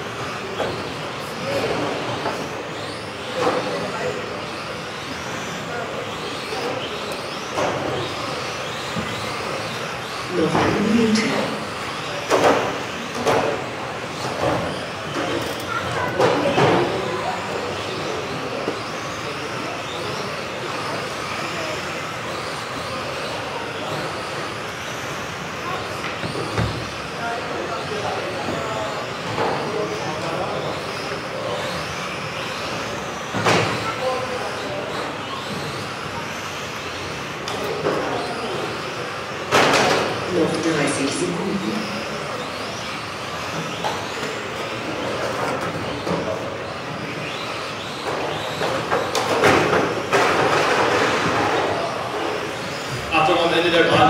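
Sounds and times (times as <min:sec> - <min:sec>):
electric toy car motors whining: 0:00.0 - 0:54.0.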